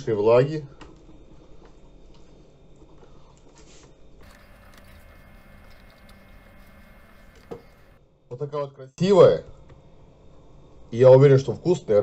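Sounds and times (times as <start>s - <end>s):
paper napkins dabbing fish: 4.2s - 8.0s.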